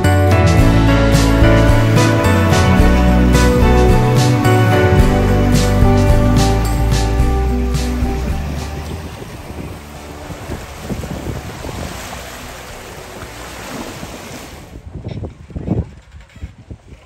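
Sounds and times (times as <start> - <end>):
waves breaking on sandy shore: 6.7 - 14.8
wind buffeting microphone: 7.2 - 17.0.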